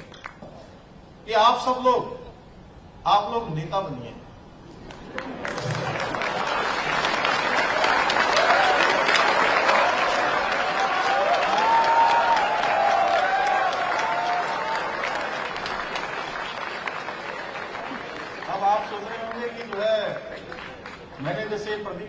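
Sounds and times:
audience applauding: 4.9s - 21.6s.

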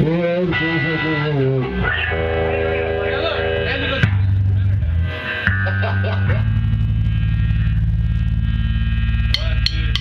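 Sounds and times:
distorted electric bass drone: 0.0s - 10.0s.

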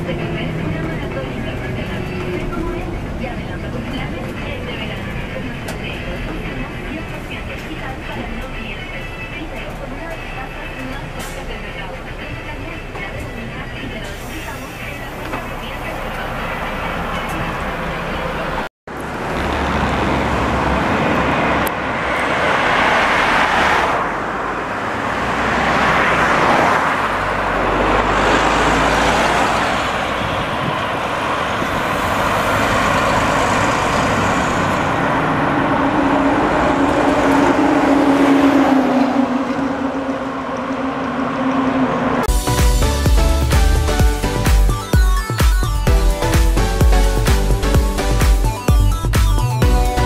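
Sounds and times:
passing vehicles: 0.0s - 44.8s
engine running: 0.0s - 50.0s
music: 4.5s - 15.8s, 42.3s - 50.0s.

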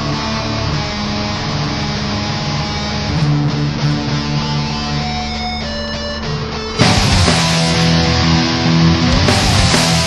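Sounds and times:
distorted bass: 0.0s - 10.0s
distorted electric guitar: 0.0s - 10.0s.

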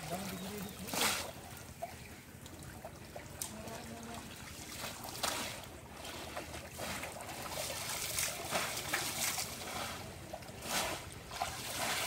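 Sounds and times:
water sloshing and splashing: 0.0s - 12.0s.

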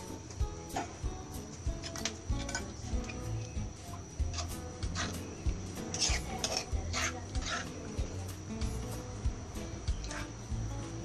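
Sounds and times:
metal spoon scraping stone mortar: 1.7s - 9.0s, 9.9s - 10.4s.

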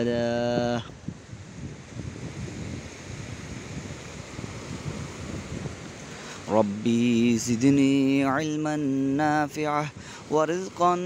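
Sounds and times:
small waves lapping shoreline: 0.0s - 11.0s
wind buffeting microphone: 0.0s - 11.0s.

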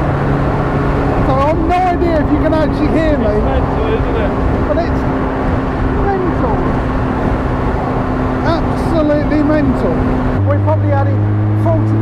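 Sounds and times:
engine running at cruise: 0.0s - 12.0s
wind and road noise: 0.0s - 12.0s.

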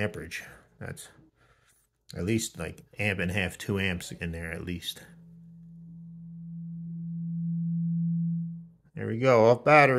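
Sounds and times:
coil humming: 5.0s - 8.8s.

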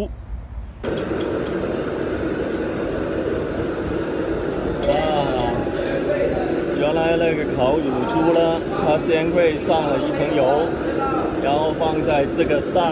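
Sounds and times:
clinks of glass and metal: 4.8s - 5.6s
chatter of many voices: 4.8s - 12.9s.

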